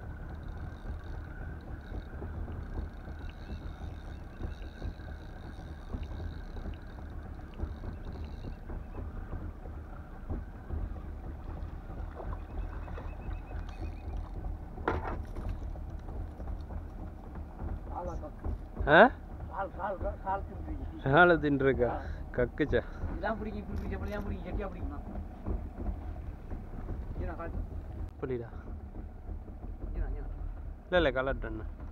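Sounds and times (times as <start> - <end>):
fishing reel drag ticking: 0.0 - 18.8
water slapping against boat hull: 0.0 - 31.9
wind rumbling on microphone: 0.0 - 31.9.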